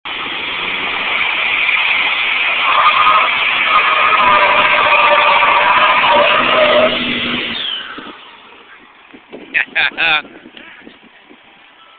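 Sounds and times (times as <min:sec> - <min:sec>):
diesel engine at high revs: 0:00.1 - 0:08.9
tyres spinning and squealing: 0:00.2 - 0:09.1.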